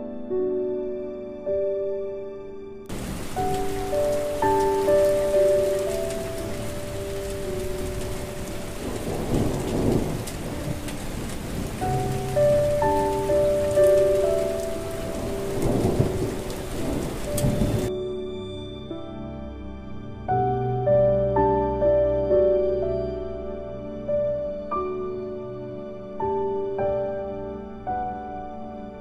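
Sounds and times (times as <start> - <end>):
gentle piano melody: 0.0 - 29.0
steady rain: 2.9 - 17.9
thunder rumble: 2.9 - 17.9.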